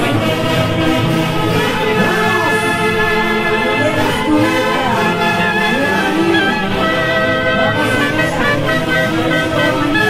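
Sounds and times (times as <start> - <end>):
saxophones and violins orchestra: 0.0 - 10.0.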